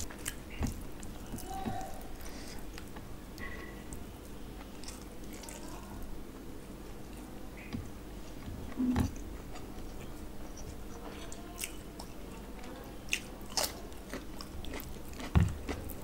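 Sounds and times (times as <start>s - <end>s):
wet chewing: 0.0s - 4.0s, 8.3s - 16.0s
cucumber crunching: 13.1s - 16.0s.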